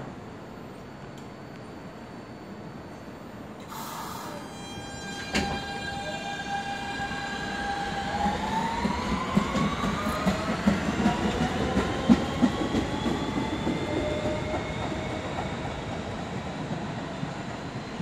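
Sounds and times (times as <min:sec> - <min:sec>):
train motor whine: 0:03.6 - 0:11.5.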